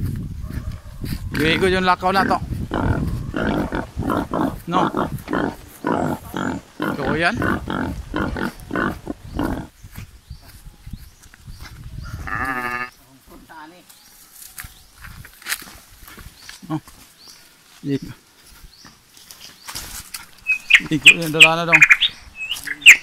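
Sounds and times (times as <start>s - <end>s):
footsteps through grass: 0.0s - 21.6s, 22.2s - 23.0s.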